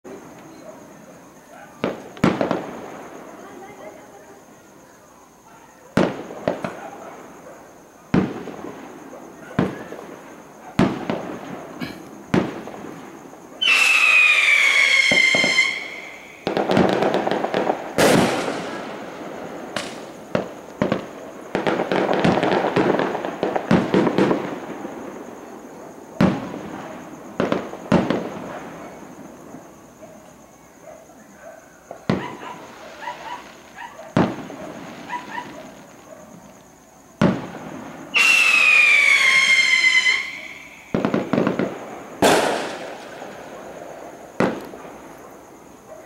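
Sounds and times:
whistling firework: 0.0 - 3.8, 5.8 - 30.6, 31.8 - 36.6, 37.2 - 45.8
firework crackle: 1.4 - 4.8, 5.9 - 7.4, 8.0 - 30.5, 31.8 - 45.8
firework shells bursting: 10.8 - 25.0, 37.2 - 45.3.

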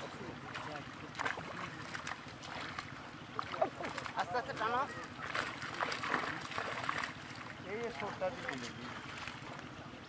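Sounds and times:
water sloshing and splashing: 0.0 - 10.0.

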